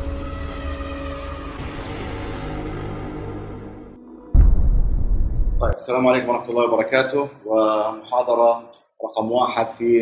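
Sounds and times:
deep low rumble: 3.9 - 5.8.

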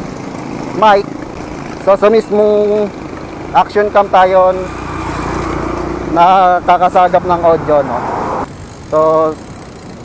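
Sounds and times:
bicycle ride background noise: 0.0 - 10.0.

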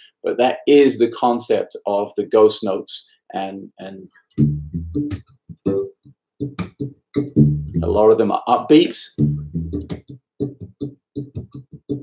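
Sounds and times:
palm-muted electric bass: 4.4 - 8.1, 9.1 - 12.0.

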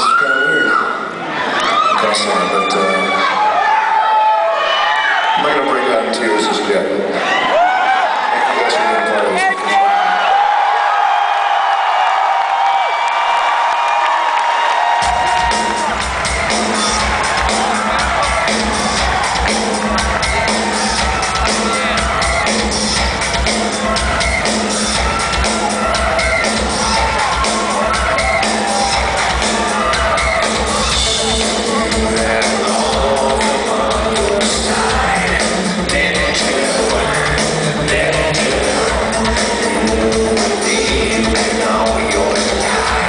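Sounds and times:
crowd cheering and whooping: 0.0 - 6.4, 7.1 - 43.0
heavy electronic drum beat: 15.0 - 43.0
live industrial rock band: 15.0 - 43.0.

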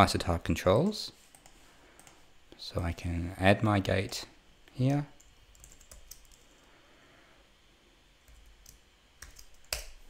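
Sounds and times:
computer keyboard typing: 1.3 - 2.2, 5.2 - 6.6, 8.3 - 10.0.

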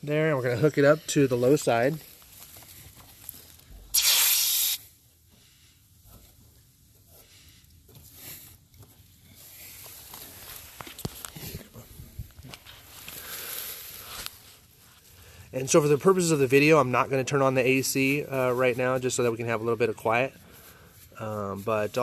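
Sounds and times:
refrigerant hissing: 3.8 - 4.9.

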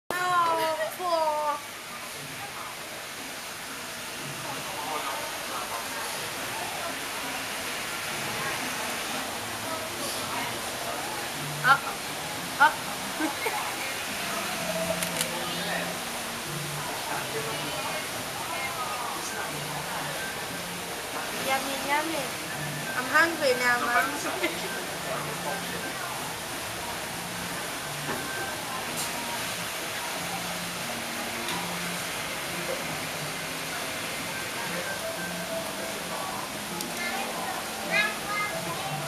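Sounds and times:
people chattering: 0.1 - 39.0
running water rushing: 0.1 - 39.0.

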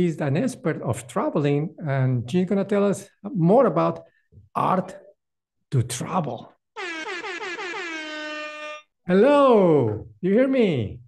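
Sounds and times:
brassy electronic horn tone: 6.8 - 9.0.

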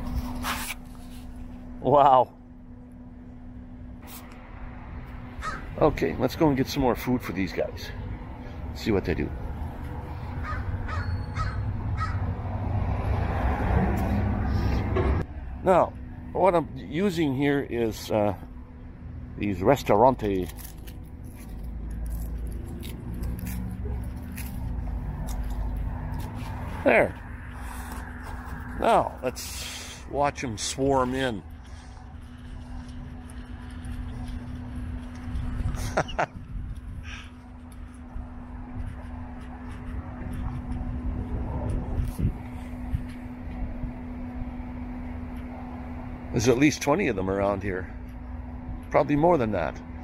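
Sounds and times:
constant low hum: 0.0 - 50.0
steady low rumble: 0.0 - 50.0
crows cawing: 5.4 - 5.8, 10.1 - 12.3.

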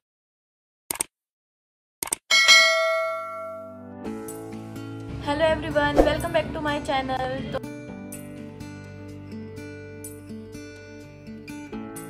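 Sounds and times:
notification bell chime: 2.3 - 3.8.

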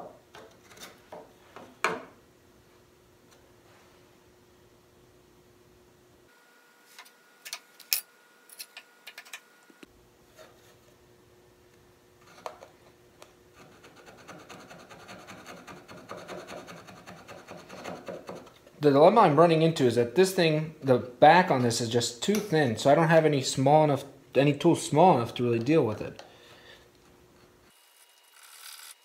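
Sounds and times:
file scraping in wood: 13.6 - 18.5.

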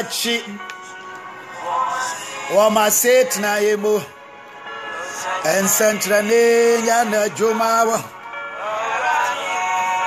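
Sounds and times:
man singing a praise chant: 1.8 - 4.1, 5.2 - 8.1.

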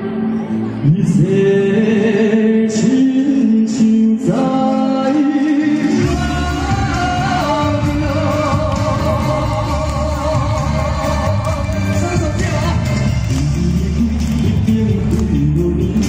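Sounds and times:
musical accompaniment with deep bass: 0.0 - 16.0
man singing pop ballad: 0.7 - 16.0.

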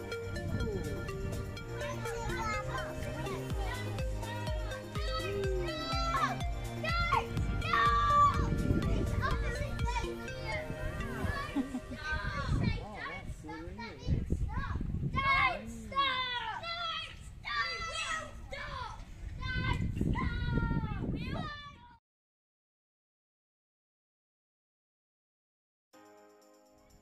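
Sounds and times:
music with held notes: 0.0 - 12.8
children calling and chattering: 0.0 - 22.0.

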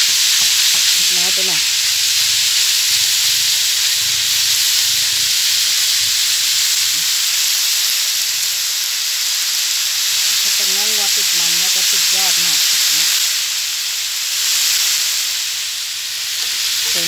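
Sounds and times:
meat sizzling in a wok: 0.0 - 17.0.

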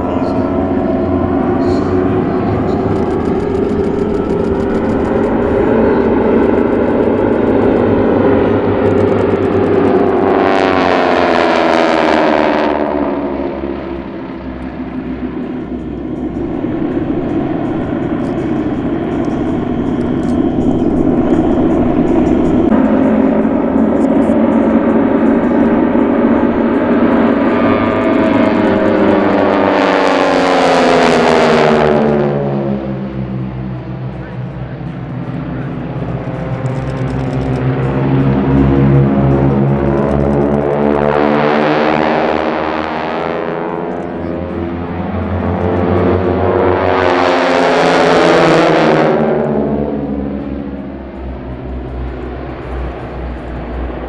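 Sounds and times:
propeller planes droning overhead: 0.0 - 54.0.

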